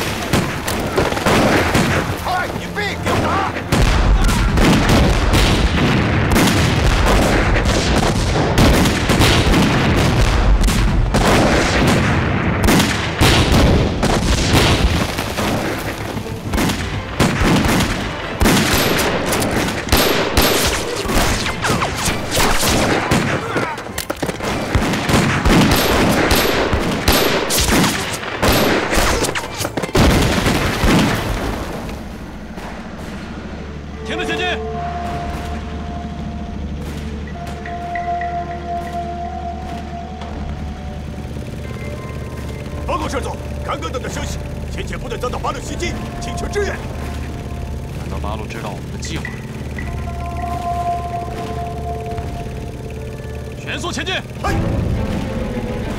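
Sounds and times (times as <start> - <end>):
rapid gunfire: 3.0 - 33.5.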